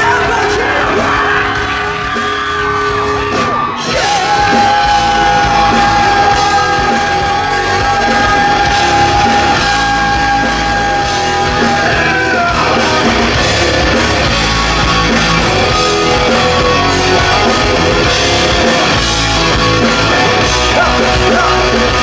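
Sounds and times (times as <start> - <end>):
live rock band: 0.0 - 22.0.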